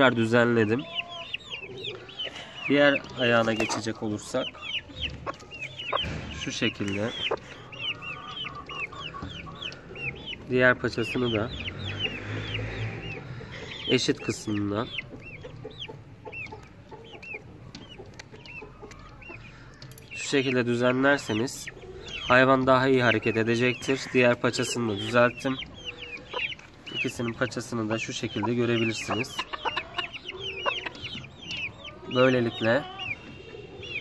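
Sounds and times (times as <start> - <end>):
chickens clucking softly: 0.0 - 34.0.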